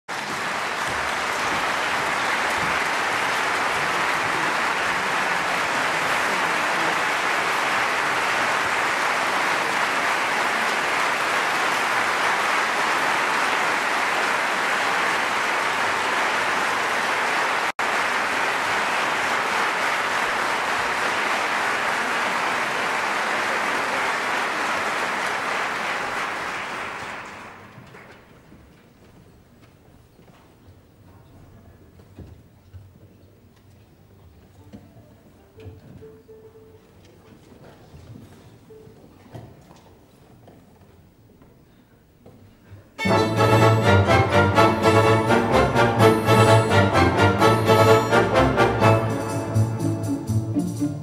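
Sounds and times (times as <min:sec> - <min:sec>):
audience applauding: 0:00.1 - 0:28.5, 0:43.0 - 0:49.4.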